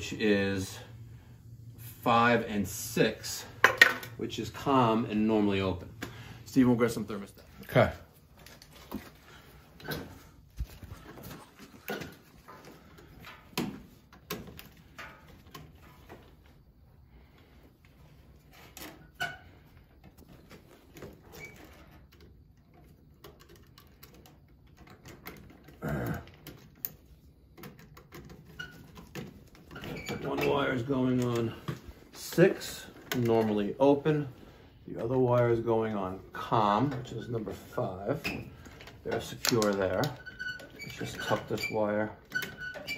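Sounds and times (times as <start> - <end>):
small clicks taps and rustles: 20.0 - 33.7, 38.6 - 42.9.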